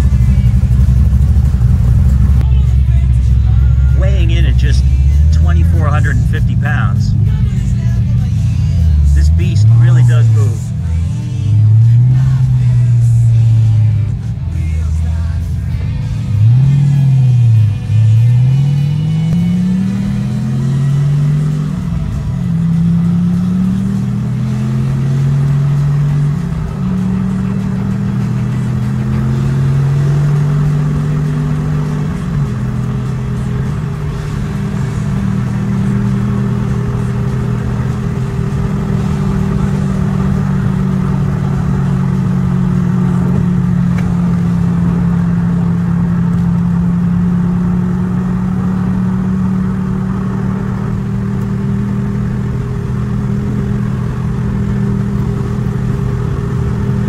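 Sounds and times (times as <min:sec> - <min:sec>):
car engine from inside cabin: 0:00.0 - 0:57.0.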